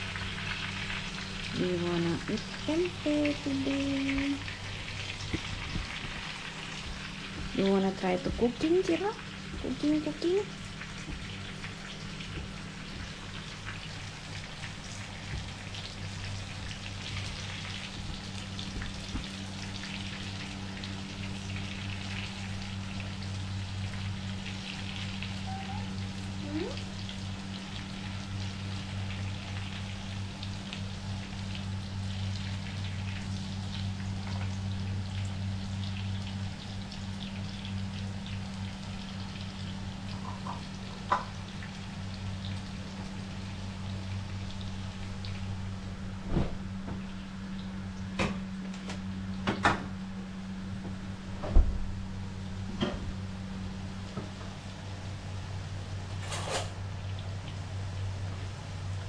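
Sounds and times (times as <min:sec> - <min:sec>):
food sizzling in hot oil: 0:00.0 - 0:45.7.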